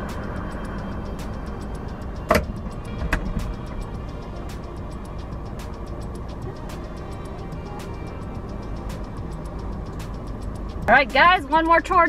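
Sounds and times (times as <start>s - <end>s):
car engine idling: 0.0s - 12.0s
quiet music with ticking beat: 0.0s - 12.0s.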